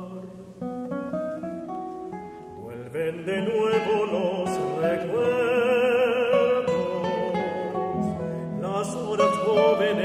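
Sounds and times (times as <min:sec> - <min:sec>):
acoustic guitars playing: 0:00.0 - 0:10.0.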